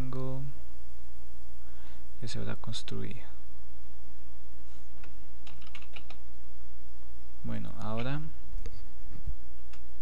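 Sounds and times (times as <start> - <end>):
steady low hum: 0.0 - 10.0
computer keyboard typing: 5.4 - 6.2.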